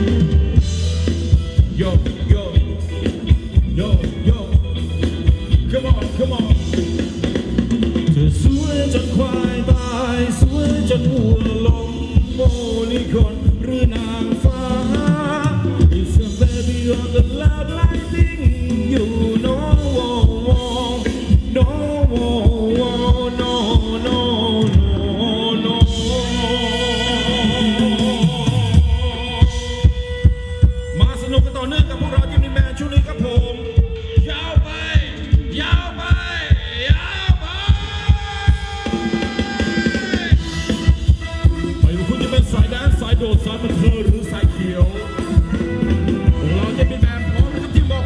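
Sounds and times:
live band music: 0.0s - 48.0s.

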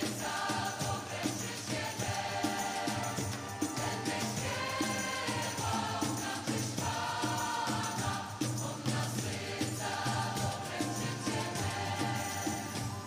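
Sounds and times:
choir singing worship song: 0.0s - 13.0s
instrumental accompaniment: 0.0s - 13.0s.

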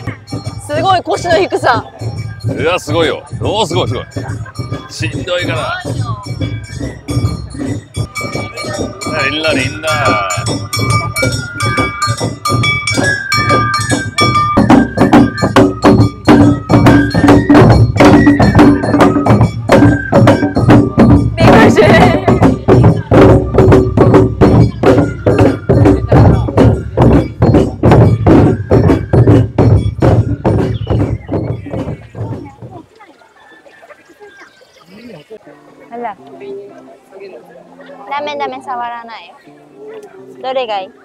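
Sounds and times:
drums: 0.0s - 41.0s
bamboo flutes playing melody: 9.9s - 32.3s.

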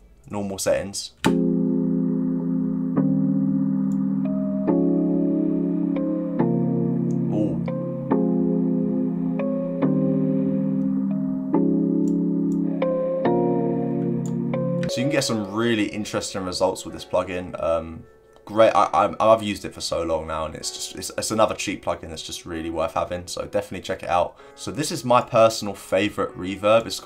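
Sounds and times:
dull sustained synth chords: 1.4s - 16.0s.

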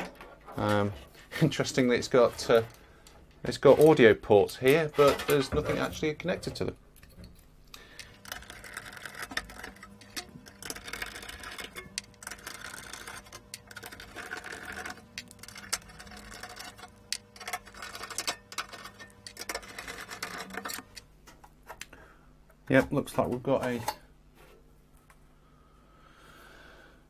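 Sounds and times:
hands handling metal parts: 0.0s - 24.6s.

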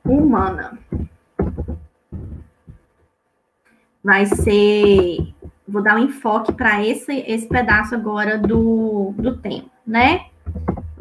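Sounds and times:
muffled keyboard typing thumps: 0.0s - 2.9s, 4.3s - 5.6s, 6.5s - 11.0s.

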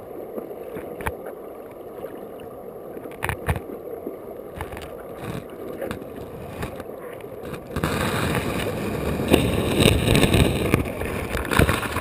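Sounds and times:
river water rushing underwater: 0.0s - 12.0s.

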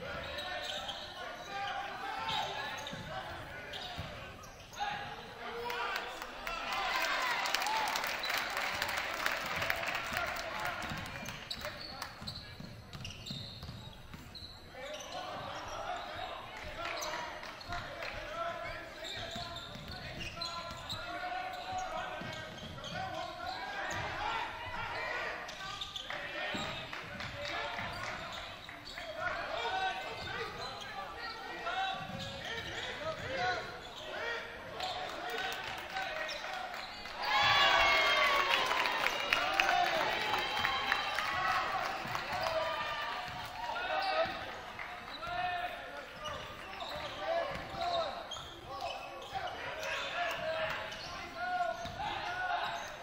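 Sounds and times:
voices and shouts in a gym: 0.0s - 53.0s.

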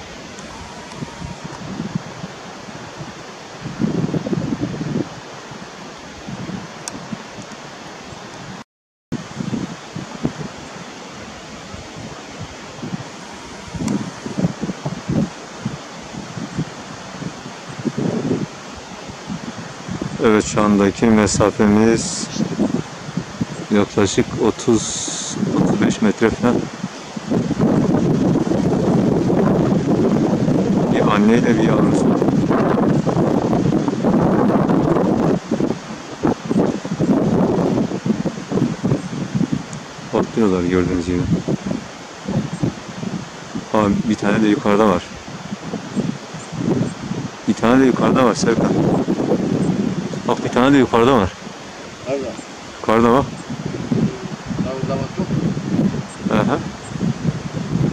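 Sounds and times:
wind buffeting microphone: 0.0s - 8.6s, 9.2s - 57.9s.

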